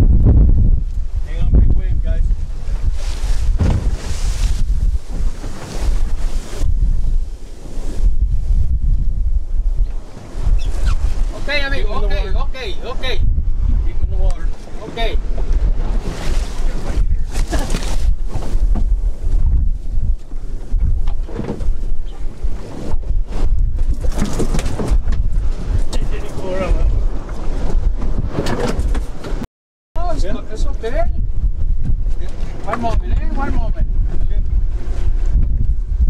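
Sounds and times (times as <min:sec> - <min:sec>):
wind buffeting microphone: 0:00.0 - 0:29.4, 0:30.0 - 0:36.0.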